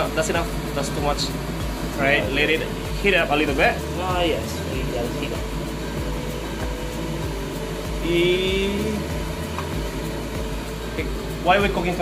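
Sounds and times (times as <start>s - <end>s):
kitchen hum and rush: 0.0s - 12.0s.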